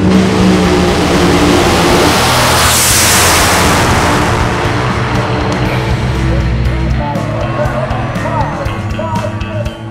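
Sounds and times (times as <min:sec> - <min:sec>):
dragster engine roaring: 0:00.0 - 0:09.9.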